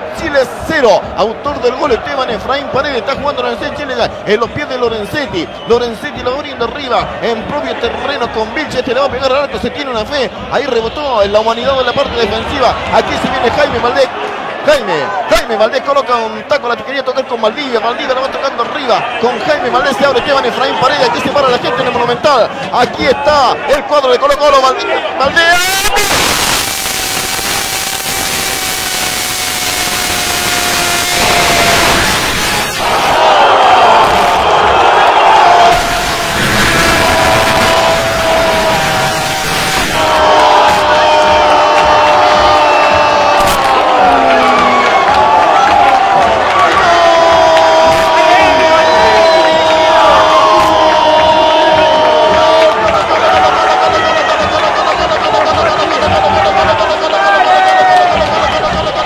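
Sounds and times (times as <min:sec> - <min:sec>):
stadium crowd cheering: 0:00.0 - 0:59.0
commentator shouting goal cry: 0:35.6 - 0:59.0.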